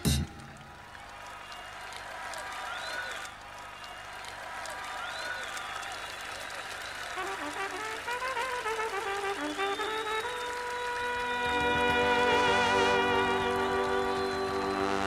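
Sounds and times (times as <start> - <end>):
audience applauding and cheering: 0.0 - 15.0
solo brass horn melody: 7.1 - 15.0.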